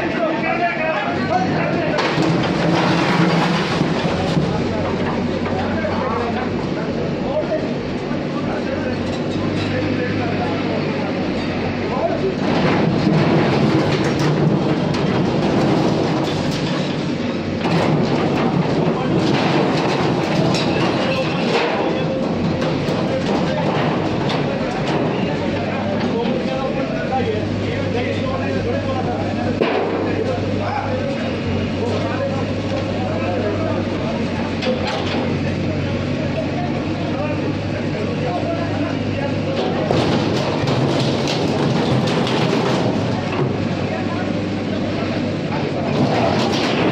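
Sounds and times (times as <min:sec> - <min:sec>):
diesel engine humming: 0:00.0 - 0:46.9
metal sheets rattling and clanking: 0:01.4 - 0:05.6, 0:12.3 - 0:26.8, 0:39.3 - 0:46.9.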